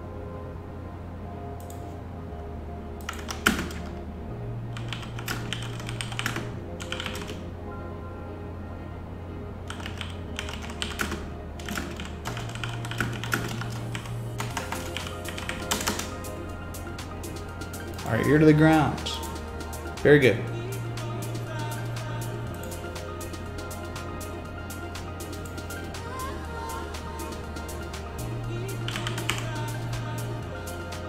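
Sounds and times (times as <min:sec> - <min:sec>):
computer keyboard typing: 0:03.0 - 0:03.9, 0:04.7 - 0:07.4, 0:09.7 - 0:16.2, 0:28.8 - 0:29.8
background music with bass line: 0:09.4 - 0:31.0.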